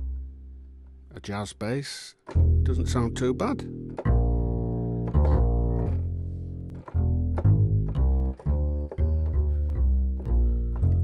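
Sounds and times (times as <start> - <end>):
plucked upright bass line: 0.0 - 1.6, 2.2 - 11.0.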